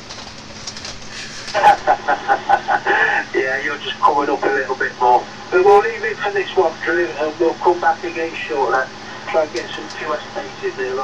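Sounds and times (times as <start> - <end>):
radio static hiss: 1.0 - 11.0
man laughing: 1.2 - 3.8.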